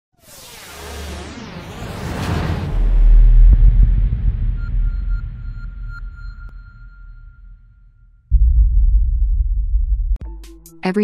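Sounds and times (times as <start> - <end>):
deep low rumble: 2.1 - 10.2
thin high ringing tone: 4.6 - 8.3.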